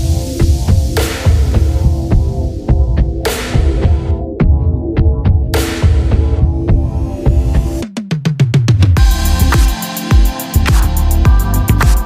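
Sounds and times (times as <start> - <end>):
electronic music with kick drum: 0.0 - 12.0.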